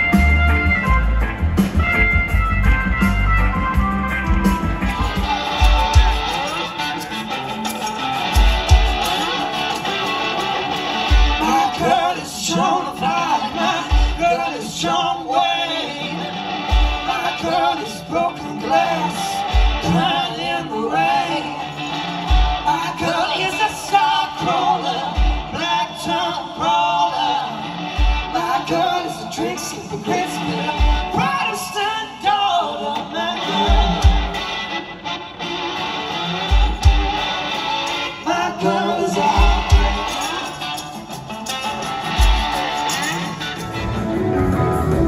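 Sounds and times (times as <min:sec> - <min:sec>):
resonator guitar playing: 0:00.0 - 0:11.6, 0:40.9 - 0:45.0
person singing: 0:04.8 - 0:34.8, 0:36.5 - 0:45.0.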